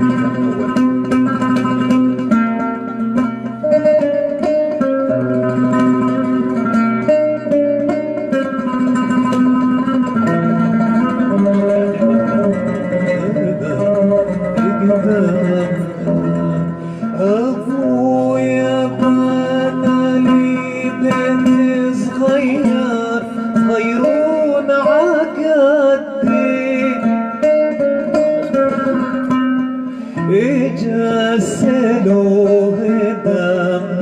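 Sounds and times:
oud plucked notes: 0.0s - 34.0s
man singing: 10.7s - 29.2s, 30.1s - 34.0s.

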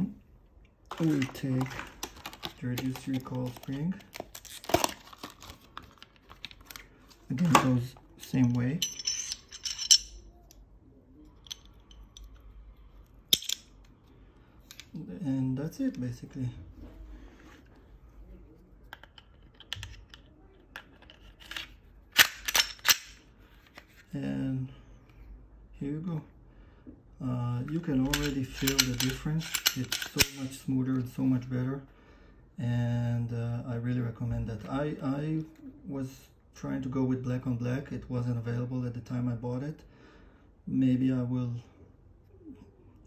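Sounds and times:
plastic blister pack crinkling: 0.9s - 7.3s.

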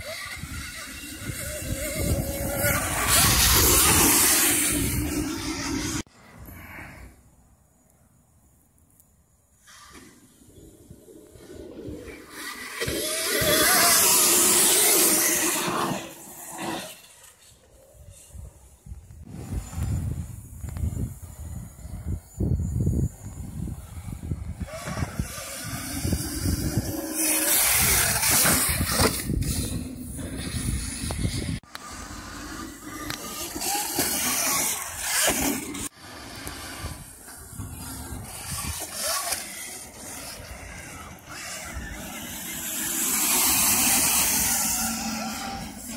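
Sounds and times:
tyres churning loose dirt: 0.0s - 6.0s, 9.6s - 18.2s, 23.8s - 45.9s
wind rumbling on microphone: 0.0s - 7.1s, 17.9s - 45.9s
electric motor whine: 19.2s - 45.9s.

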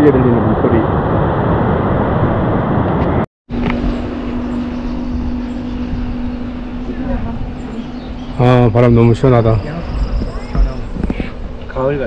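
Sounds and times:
low steady hum: 3.5s - 11.8s.

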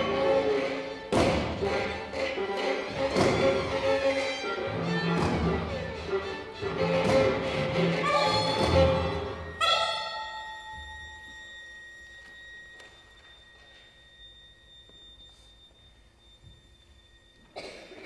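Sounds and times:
chamber ensemble playing: 0.0s - 14.6s
thin high held tone: 7.7s - 18.0s.

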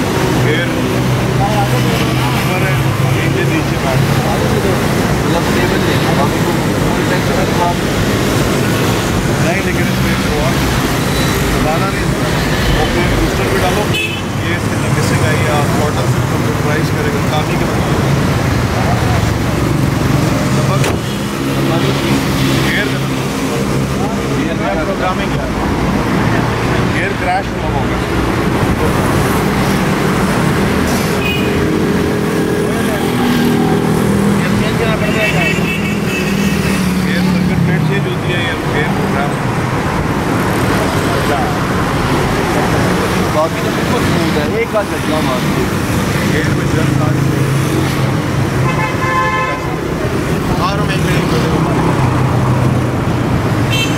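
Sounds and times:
men talking: 0.0s - 53.8s
road traffic passing: 0.0s - 53.9s.

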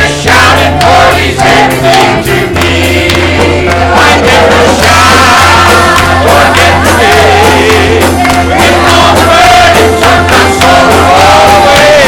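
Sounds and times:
choir singing: 0.0s - 12.0s
live band accompaniment: 0.0s - 12.0s
steady bass note: 0.0s - 12.0s.

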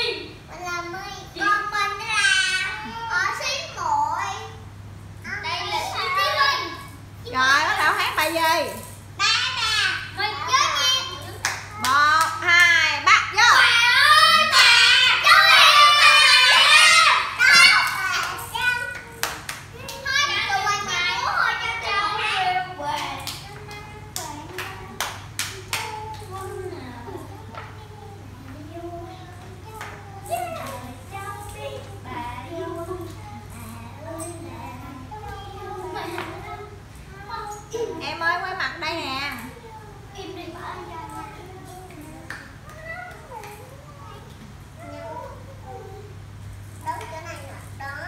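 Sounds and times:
steady low hum: 0.0s - 48.0s
children calling out and squealing: 13.4s - 22.7s
hand claps: 17.5s - 20.0s, 23.0s - 26.4s.

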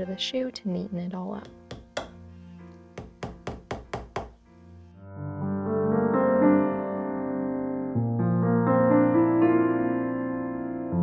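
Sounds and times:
soft background music: 0.0s - 11.0s
hammer striking nails: 1.5s - 2.2s, 3.0s - 4.4s.

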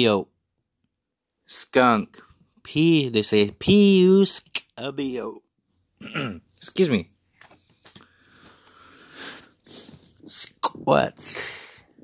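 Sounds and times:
person sniffing: 8.1s - 10.2s.

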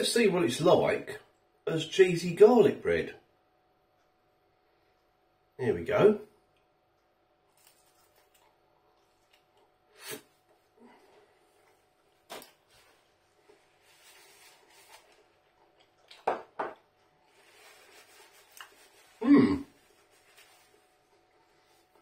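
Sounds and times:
person chewing crunchy food: 7.4s - 17.6s
paper napkin rustling: 12.2s - 15.4s, 17.3s - 21.9s
brief vocal sound: 19.2s - 19.7s.

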